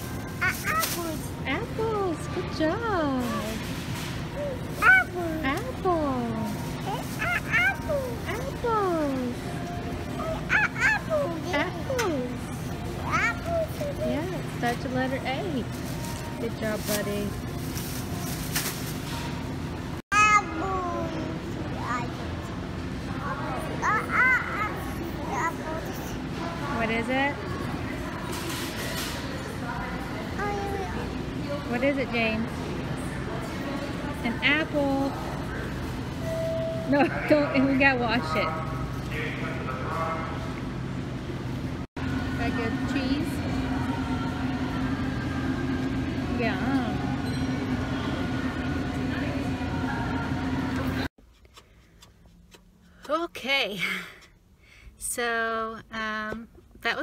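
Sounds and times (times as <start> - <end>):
store ambience hum: 0.0 - 57.0.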